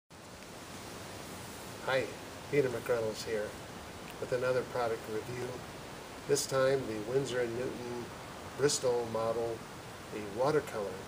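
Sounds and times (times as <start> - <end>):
open-air background hiss: 0.1 - 11.0.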